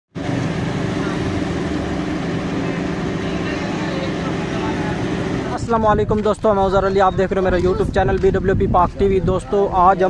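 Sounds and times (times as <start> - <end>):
vehicle engine idling: 0.1 - 8.0.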